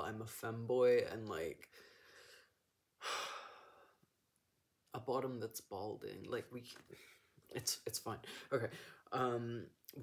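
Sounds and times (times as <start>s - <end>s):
person sighing: 3.0s - 4.0s.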